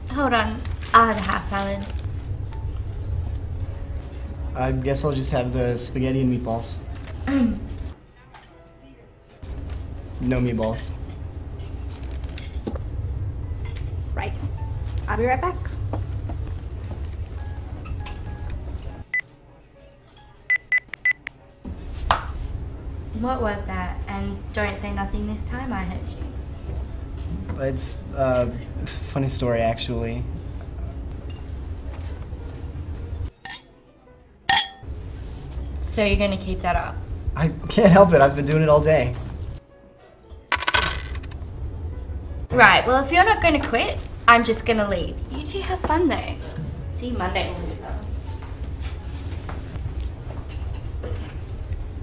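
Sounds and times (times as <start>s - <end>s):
coins clinking on a table: 40.5s - 41.4s.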